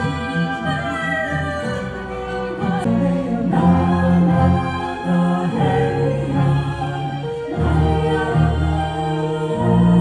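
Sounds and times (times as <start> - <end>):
symphony orchestra playing: 0.0 - 10.0
two singers holding notes: 0.0 - 10.0.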